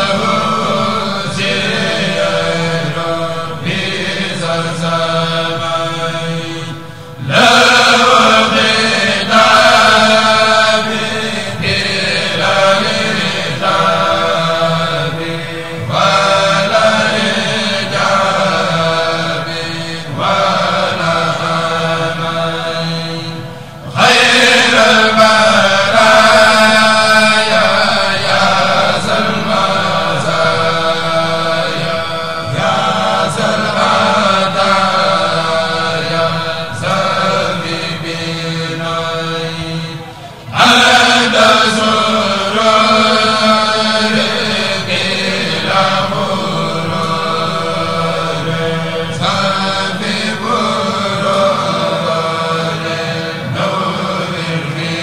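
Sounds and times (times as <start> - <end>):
men chanting in unison: 0.0 - 55.0.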